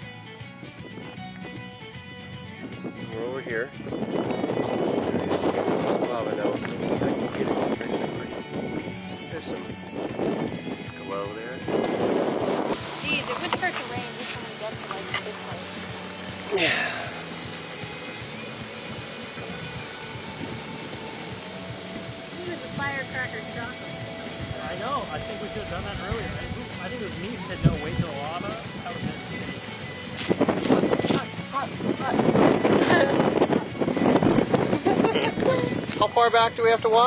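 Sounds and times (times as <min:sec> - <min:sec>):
background music: 0:00.0 - 0:37.0
indistinct voices: 0:21.6 - 0:29.3.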